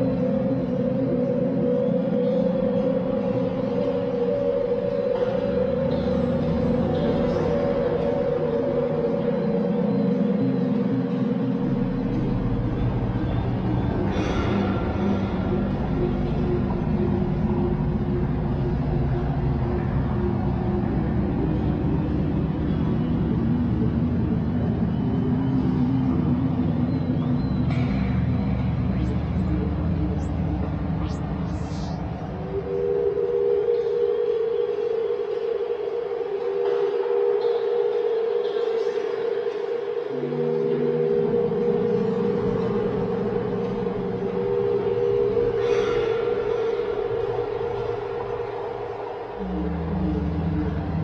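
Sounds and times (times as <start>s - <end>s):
low rumbling drone: 0.0s - 36.6s, 39.9s - 51.0s
sustained tones: 0.0s - 51.0s.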